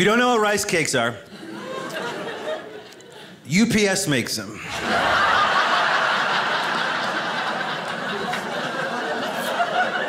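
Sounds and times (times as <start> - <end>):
audience laughing: 1.3 - 3.4, 4.6 - 10.0.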